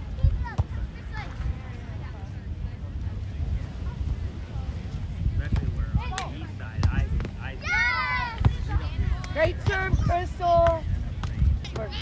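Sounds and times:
faint voices: 0.0 - 12.0
wind rumbling on microphone: 0.0 - 12.0.

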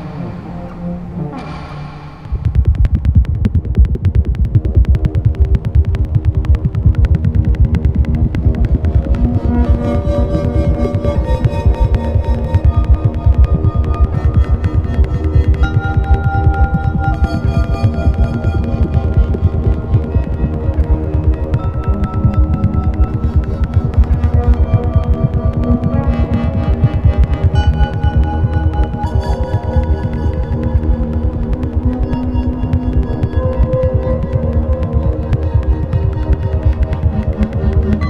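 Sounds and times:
experimental electronic music: 0.0 - 38.0
held synth drones: 0.0 - 38.0
throbbing bass pulse: 0.0 - 38.0.

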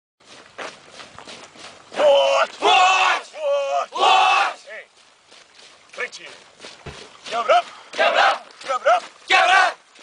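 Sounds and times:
faint running boot footsteps: 0.2 - 10.0.

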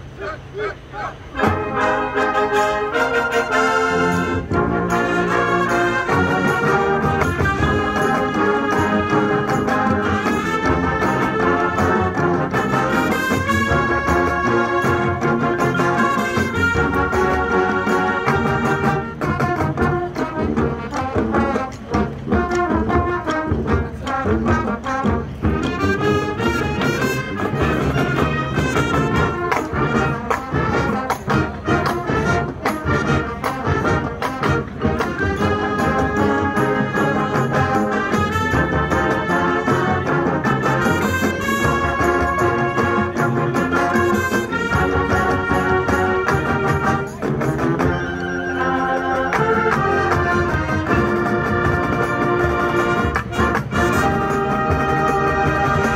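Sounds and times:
marching percussion beat: 0.0 - 55.9
brass melody: 1.2 - 55.9.

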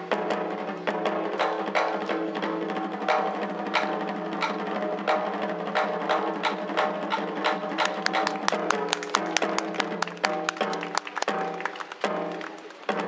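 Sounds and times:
taiko drum driving rhythm: 0.0 - 13.0.

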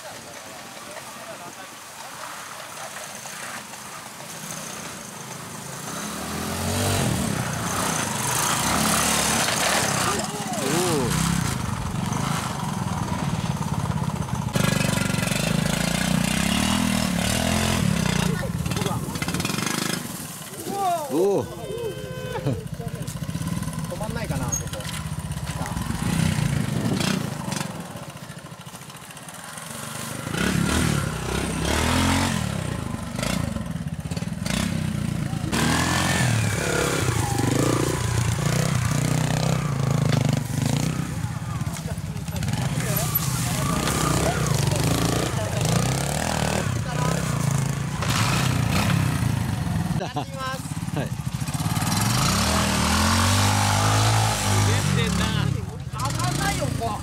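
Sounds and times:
voices: 0.0 - 6.1, 6.9 - 29.6, 30.9 - 57.0
motorcycle engines revving: 0.0 - 57.0.

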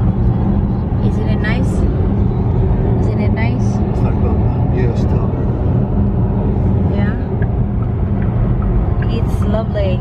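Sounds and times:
road and tyre noise in car: 0.0 - 10.0.

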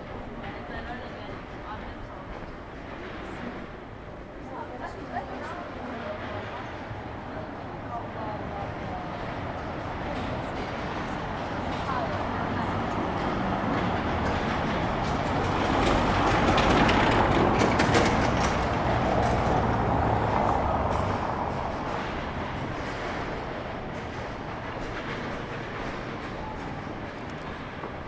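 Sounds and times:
car driving over cobblestones: 9.3 - 28.0.

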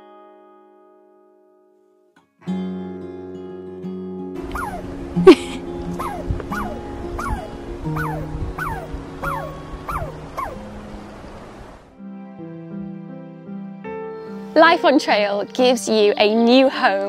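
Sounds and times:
background music: 2.4 - 17.0
squirrel chirping: 4.4 - 5.0, 6.0 - 10.9.

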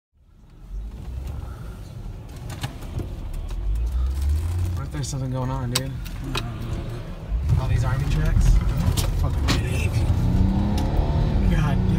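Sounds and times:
car driving low rumble: 0.2 - 11.9.

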